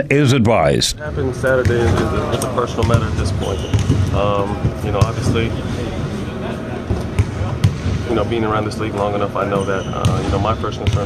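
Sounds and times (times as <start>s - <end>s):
basketballs bouncing on hardwood: 2.8s - 5.6s, 6.9s - 8.2s, 9.6s - 11.0s.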